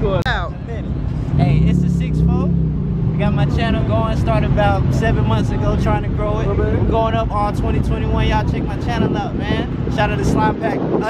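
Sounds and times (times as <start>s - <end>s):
man talking: 0.0s - 11.0s
car engine running: 0.3s - 10.2s
wind rumble on microphone: 1.2s - 11.0s.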